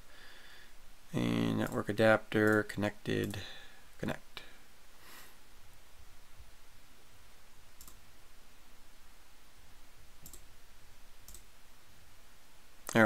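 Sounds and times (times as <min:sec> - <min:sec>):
low background hum: 0:00.0 - 0:13.0
computer mouse clicks: 0:01.6 - 0:01.8, 0:07.8 - 0:08.0, 0:10.2 - 0:10.5, 0:11.2 - 0:11.5.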